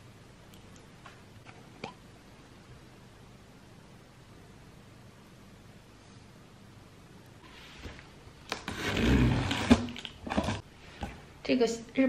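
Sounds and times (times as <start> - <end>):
box cutter scraping cardboard: 8.6 - 10.6.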